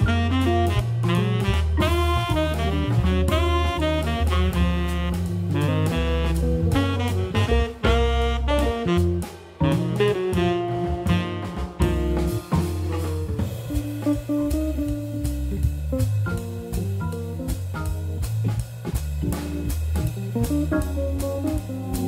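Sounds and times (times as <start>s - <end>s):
saxophone line: 0.0s - 15.3s
organ bass: 0.0s - 22.0s
swinging drums with cymbals: 0.0s - 22.0s.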